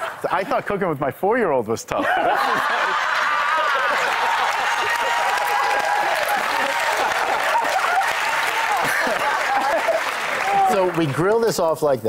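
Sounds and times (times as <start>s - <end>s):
voices laughing: 2.0s - 10.9s
audience applauding: 2.4s - 11.8s.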